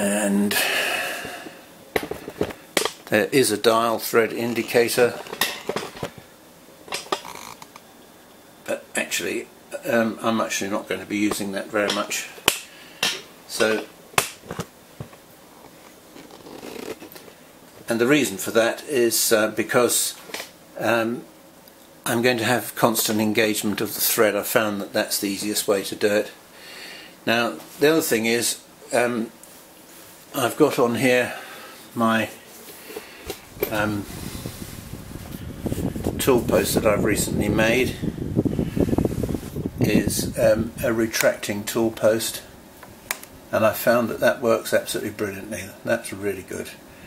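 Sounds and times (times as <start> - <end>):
camera handling rumble: 2.0 - 3.0, 14.4 - 17.3
faint rustling: 32.5 - 36.8.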